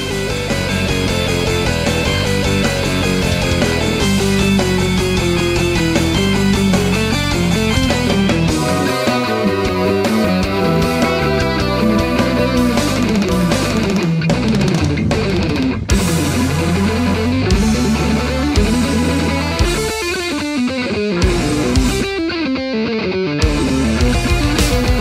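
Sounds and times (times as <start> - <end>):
heavy electric guitar playing: 0.0 - 24.7.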